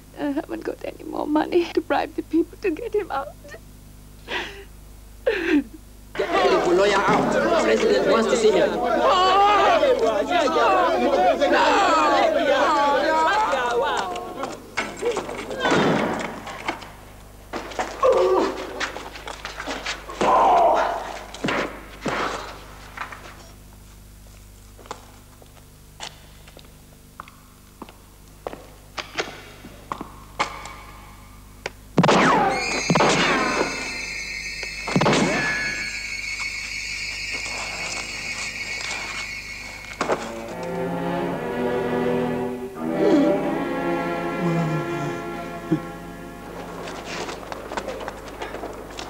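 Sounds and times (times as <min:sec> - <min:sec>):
high squealing tone: 0:32.1 - 0:40.8
low sustained string notes: 0:33.7 - 0:47.9.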